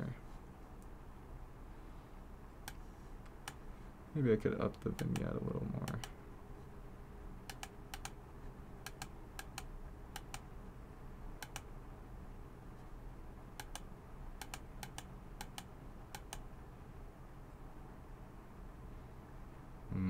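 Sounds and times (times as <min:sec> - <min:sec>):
low room hum: 0:00.0 - 0:20.0
computer mouse clicking: 0:02.6 - 0:03.6, 0:04.8 - 0:06.2, 0:07.5 - 0:08.2, 0:08.8 - 0:10.5, 0:11.4 - 0:11.7, 0:13.6 - 0:16.5.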